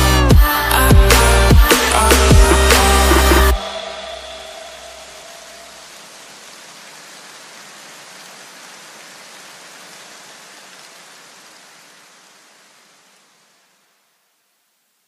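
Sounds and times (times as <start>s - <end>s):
steady hiss: 1.2s - 15.0s.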